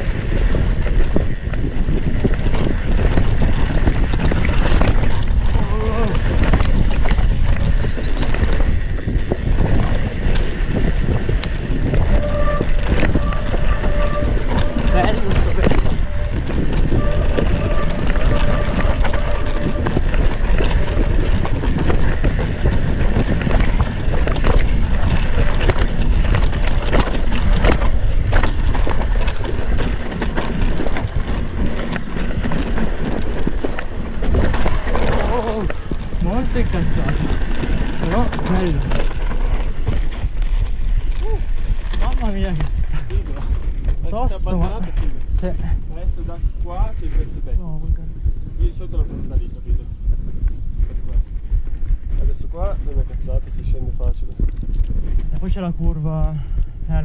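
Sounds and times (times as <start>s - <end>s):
bike tyre noise: 0.0s - 47.5s, 48.4s - 57.0s
bike rattling over bumps: 0.0s - 47.6s, 48.4s - 57.0s
wind rushing on microphone: 0.0s - 57.0s.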